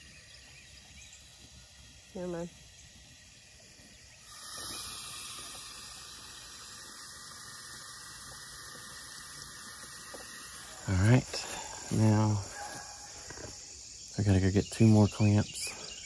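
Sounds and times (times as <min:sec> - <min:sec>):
insects chirring: 0:00.0 - 0:16.0.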